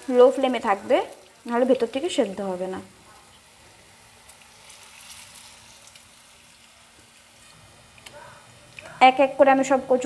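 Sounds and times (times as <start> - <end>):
faint sizzle in frying pan: 0.0 - 10.0
light oil crackles: 0.0 - 10.0.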